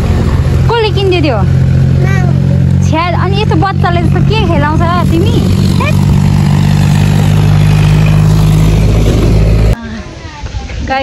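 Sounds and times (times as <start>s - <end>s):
tractor engine running: 0.0s - 9.8s.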